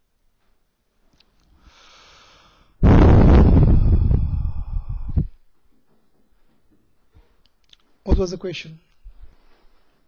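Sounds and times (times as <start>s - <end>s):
faint breath in: 1.5s - 2.8s, 3.6s - 5.4s
heavy exhale into microphone: 1.6s - 5.4s.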